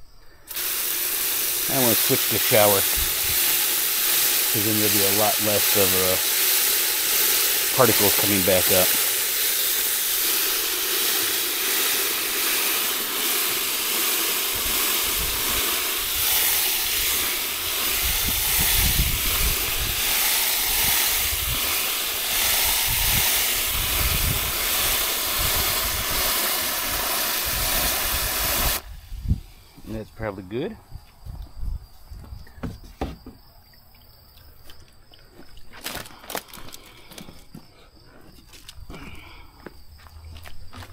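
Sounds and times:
water splashing in bucket: 0:00.5 - 0:28.9
hose nozzle spray hissing: 0:00.5 - 0:30.4.

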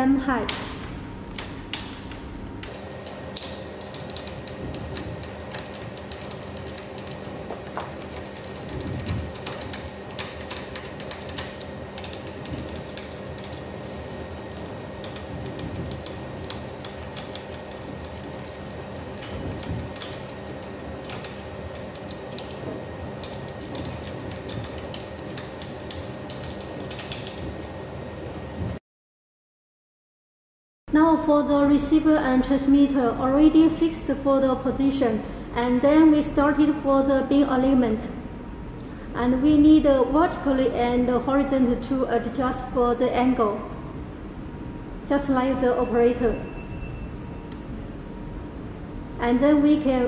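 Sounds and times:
faint hum: 0:00.0 - 0:28.8, 0:30.9 - 0:50.0.

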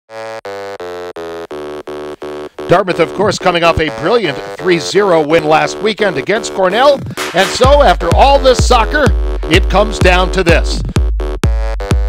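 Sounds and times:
low-pitched buzzer blasts: 0:00.1 - 0:12.0.

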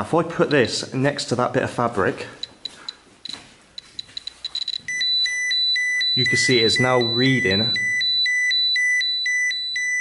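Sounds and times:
rapid high-pitched alarm beeping: 0:04.1 - 0:10.0.

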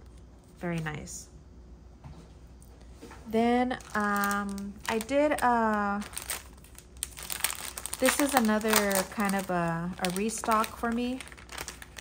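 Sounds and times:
plastic bag crinkling: 0:03.5 - 0:12.0.

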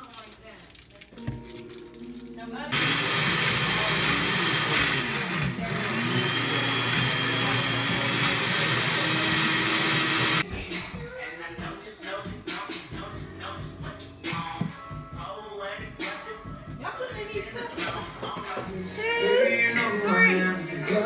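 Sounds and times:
blender running: 0:02.7 - 0:10.4.

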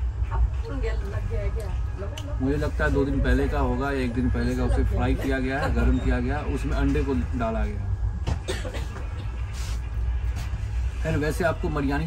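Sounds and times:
train rumble inside coach: 0:00.0 - 0:12.0.

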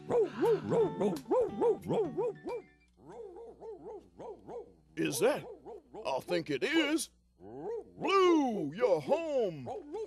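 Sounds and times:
person yelping like a dog: 0:00.1 - 0:02.4.

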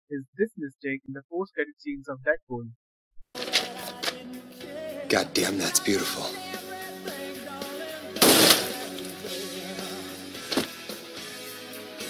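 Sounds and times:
loud gunshot: 0:08.2 - 0:08.9.

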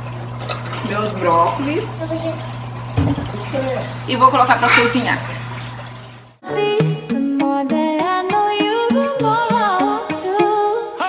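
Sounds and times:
metal pot knocking down: 0:02.9 - 0:03.4.

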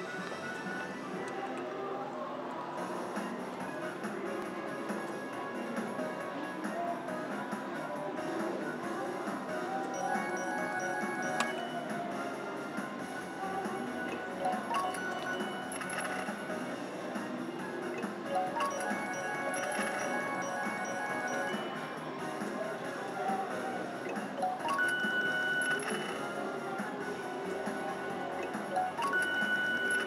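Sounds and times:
slot machine music: 0:07.6 - 0:30.0.

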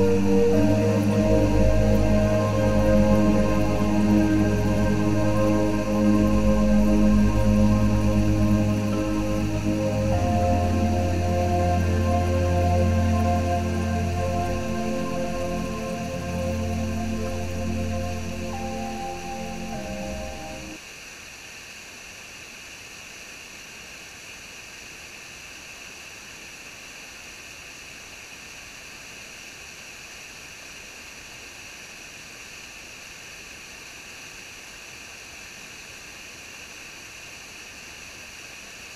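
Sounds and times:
background music: 0:00.0 - 0:20.8
waterfall rushing water: 0:00.0 - 0:38.9.

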